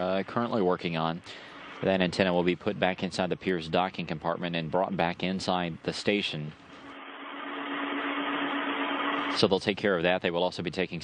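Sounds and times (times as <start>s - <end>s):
steady low hum: 0.0s - 9.7s
radio channel hiss: 0.0s - 9.9s.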